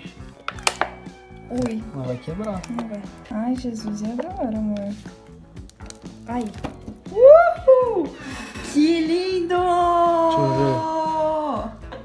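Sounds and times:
background music: 0.0 - 12.0
plastic mold crackling and clicking: 0.3 - 5.0
woman exclaiming: 7.1 - 8.2.

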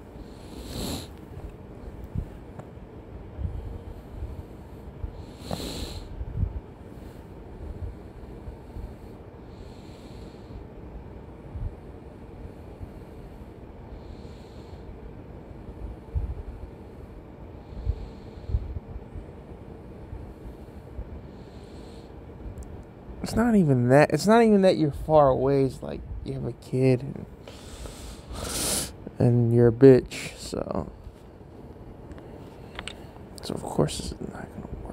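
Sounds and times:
person breathing close: 0.0 - 1.2, 3.4 - 6.2, 17.6 - 18.8, 27.4 - 29.0
low background noise: 0.0 - 34.9.

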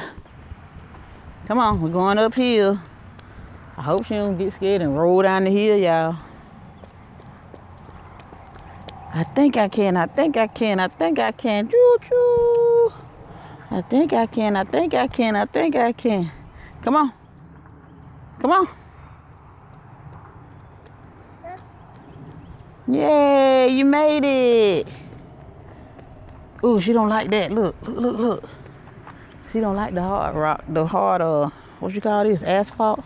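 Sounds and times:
low outdoor rumble: 0.0 - 33.0
footsteps on concrete: 0.8 - 10.8, 18.8 - 22.9, 23.5 - 30.2
woman cheering: 11.7 - 13.0.

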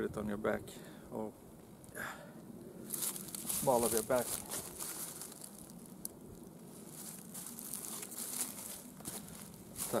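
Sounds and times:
cloth rustling and crinkling: 2.9 - 6.0, 6.7 - 10.0.

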